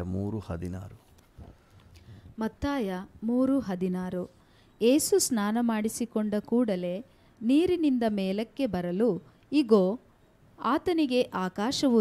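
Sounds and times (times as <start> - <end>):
man speaking: 0.0 - 1.1.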